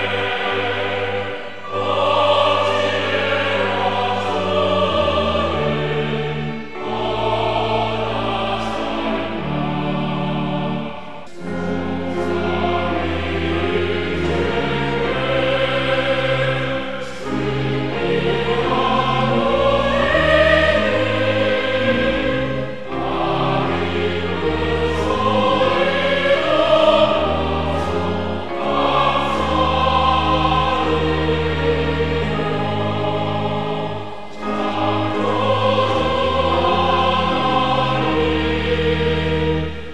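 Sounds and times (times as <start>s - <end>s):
congregation singing a hymn: 0.0s - 39.9s.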